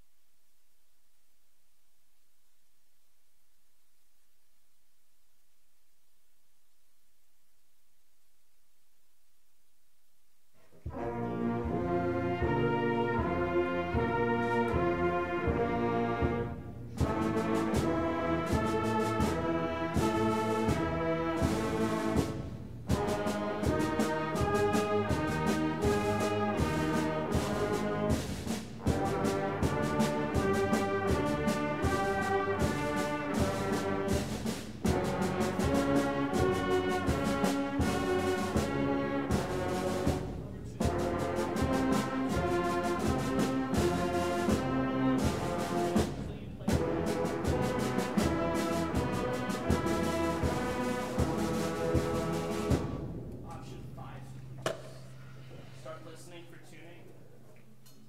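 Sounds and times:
concert band sustained chords: 10.9s - 54.6s.

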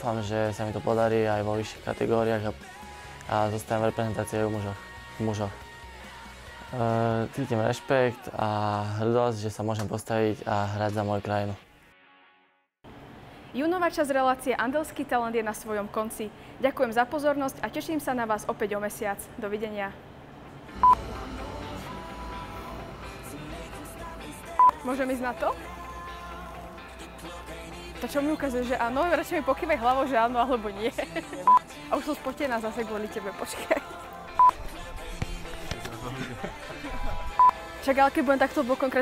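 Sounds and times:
short electronic beep: 20.8s - 21.3s.

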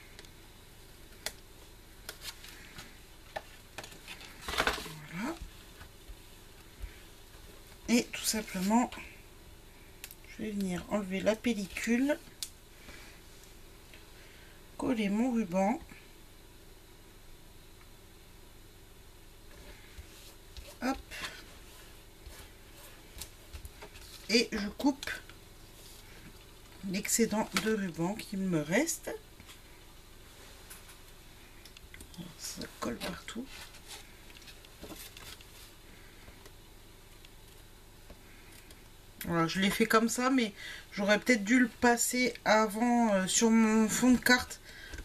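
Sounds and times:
faint room noise: 0.0s - 45.0s.

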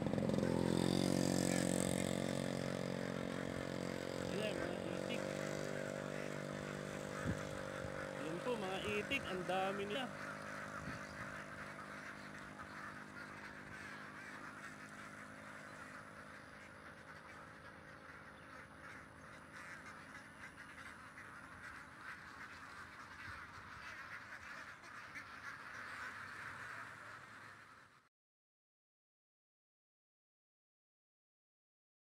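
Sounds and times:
flock of ducks quacking: 0.0s - 28.1s.

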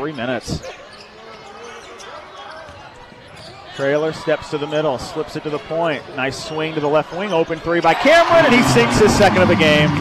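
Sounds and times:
murmur of crowd voices: 0.0s - 10.0s.

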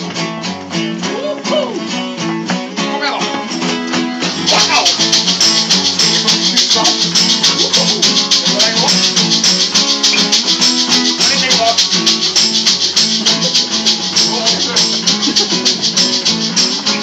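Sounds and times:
bass guitar: 0.0s - 17.0s
shaker rhythm: 0.0s - 17.0s
strummed acoustic guitars: 0.0s - 17.0s.

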